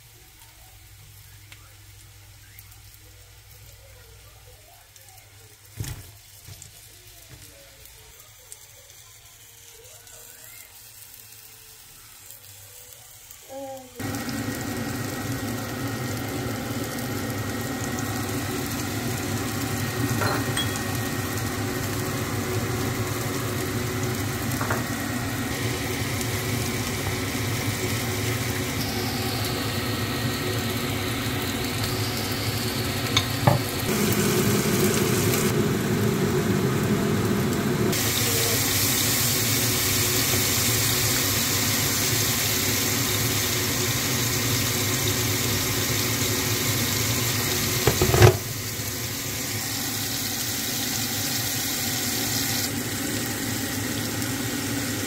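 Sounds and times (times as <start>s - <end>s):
food sizzling in frying pan: 0.0s - 55.0s.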